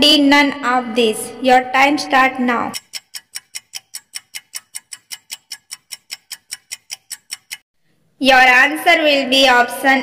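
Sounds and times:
countdown timer ticks: 2.0 - 7.6.

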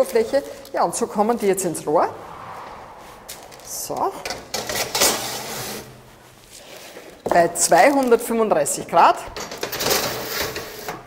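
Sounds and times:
metal baking tray scraping on runners: 9.6 - 11.0.

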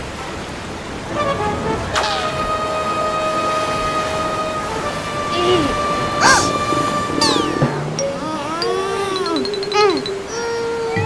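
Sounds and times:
steady noisy wash: 0.0 - 10.9
ship's horn blast: 1.0 - 8.0.

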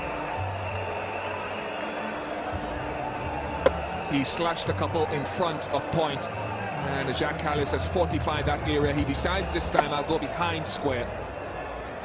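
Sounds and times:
crowd hubbub: 2.0 - 5.4
bat cracking on ball: 3.6 - 3.8.

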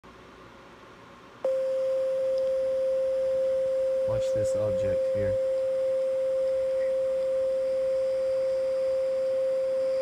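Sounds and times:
steady pure tone: 1.4 - 10.0
click: 2.4 - 2.6.

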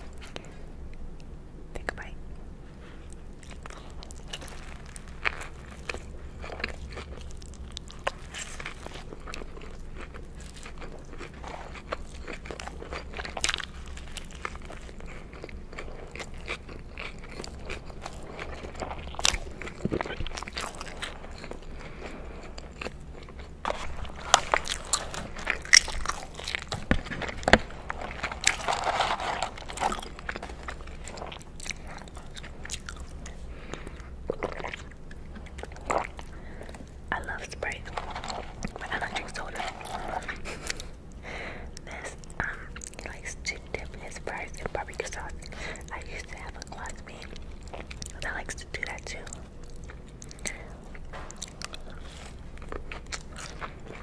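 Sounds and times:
chewing and crunching food: 0.0 - 54.0.

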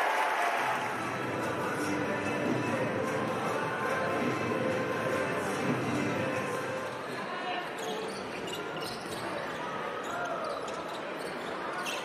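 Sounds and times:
sneakers squeaking: 6.8 - 12.0.

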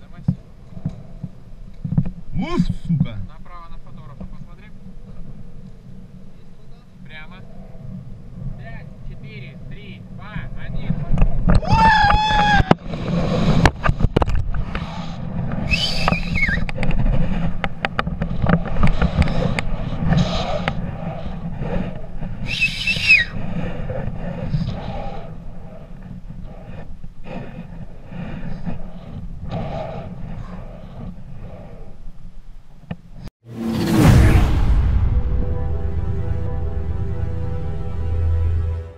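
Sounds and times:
loud whoosh effect: 33.4 - 38.9
music: 33.9 - 38.9.

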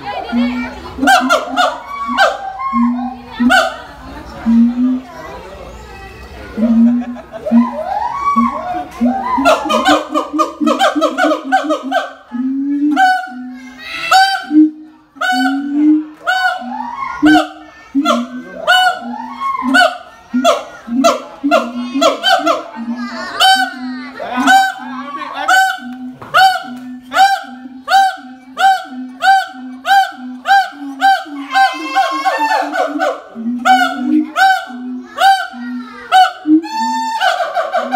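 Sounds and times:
gibbons calling loudly: 0.0 - 5.1, 6.5 - 37.9.

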